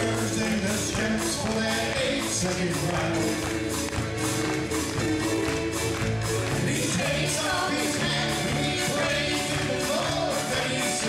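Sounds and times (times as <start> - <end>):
country band playing: 0.0 - 11.0
fiddle: 0.0 - 11.0.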